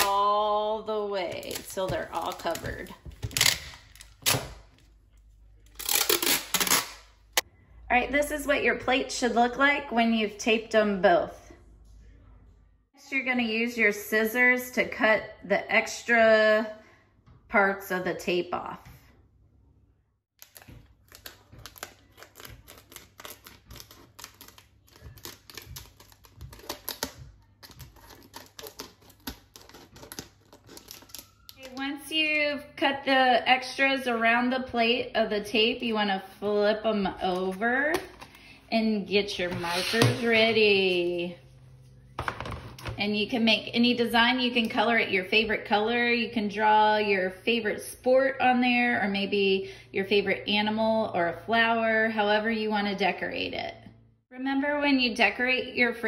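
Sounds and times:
packing tape ripping: 1.4s - 4.8s, 5.7s - 7.2s, 20.4s - 31.7s
scissors cutting tape: 5.8s - 7.0s.

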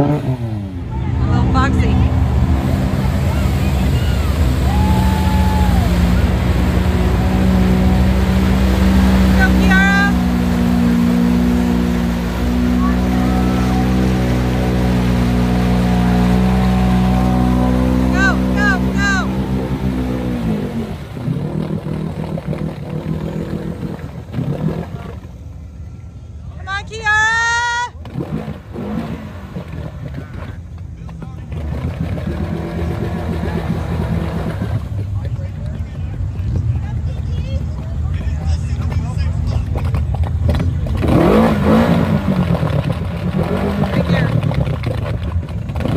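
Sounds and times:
engine revving through mud: 0.0s - 25.6s, 27.9s - 45.9s
spectators whistling and calling: 3.2s - 6.3s.

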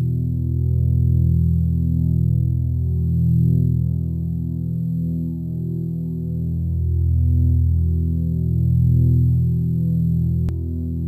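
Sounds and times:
bass and electric guitar music: 0.0s - 11.0s.

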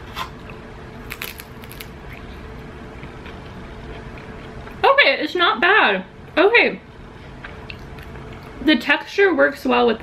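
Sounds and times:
crunching tortilla chip: 1.0s - 2.2s.

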